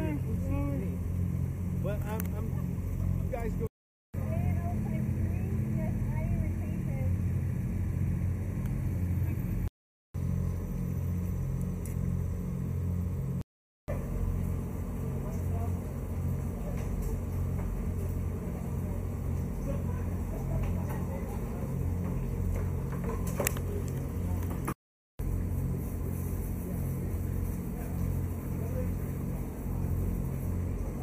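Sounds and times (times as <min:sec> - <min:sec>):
steady low rumble: 0:00.0 - 0:31.0.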